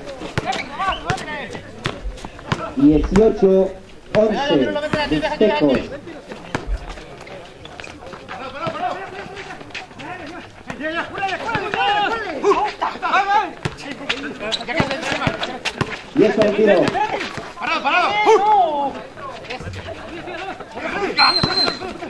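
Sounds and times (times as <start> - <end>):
people calling out: 16.8 - 18.9, 19.9 - 22.0.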